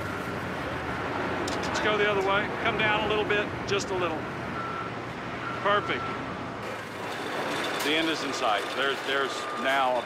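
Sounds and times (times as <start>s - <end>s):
heavy machinery engine running: 6.4s - 10.0s.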